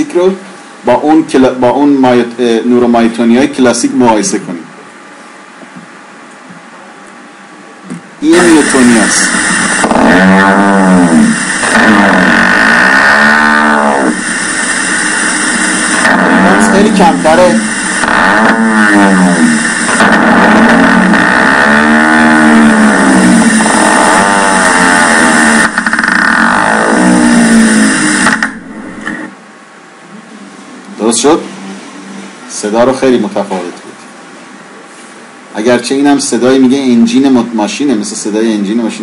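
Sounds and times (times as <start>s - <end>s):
rising and falling electronic whines: 7.8s - 29.5s.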